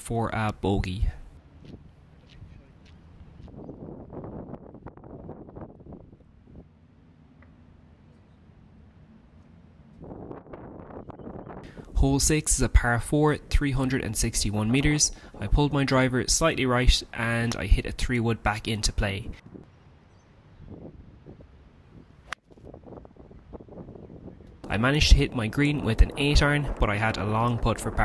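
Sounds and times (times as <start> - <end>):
wind blowing on microphone: 0.8 - 6.7, 9.9 - 18.1, 20.5 - 28.0.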